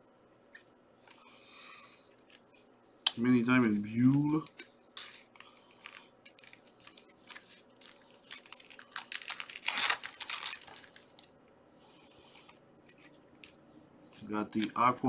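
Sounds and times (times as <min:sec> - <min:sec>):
trading cards clicking and rustling: 0:03.6 - 0:11.2
foil wrapper rustling: 0:03.6 - 0:11.3.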